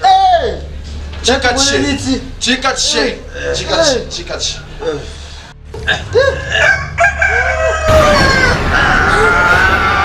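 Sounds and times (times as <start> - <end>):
rooster crowing: 6.5 - 10.0.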